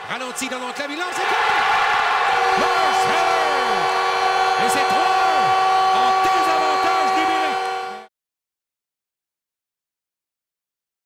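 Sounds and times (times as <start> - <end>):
crowd cheering: 0.0 - 8.1
arena goal horn chord: 2.2 - 8.1.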